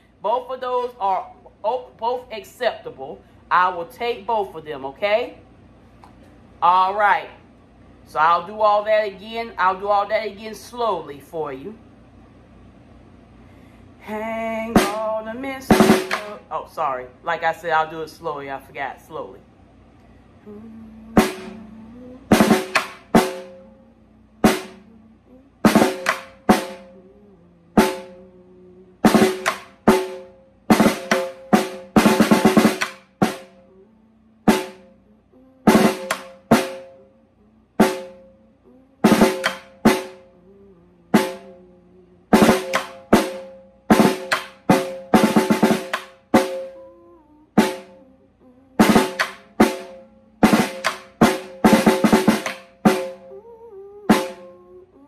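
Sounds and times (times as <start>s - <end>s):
snare drum played with sticks: 14.8s - 15.1s, 15.7s - 16.5s, 21.2s - 23.7s, 24.4s - 24.9s, 25.6s - 27.0s, 27.8s - 28.2s, 29.0s - 33.6s, 34.4s - 34.9s, 35.6s - 37.0s, 37.8s - 38.3s, 39.0s - 40.3s, 41.1s - 41.6s, 42.3s - 46.8s, 47.6s - 48.0s, 48.8s - 53.3s, 54.1s - 54.5s.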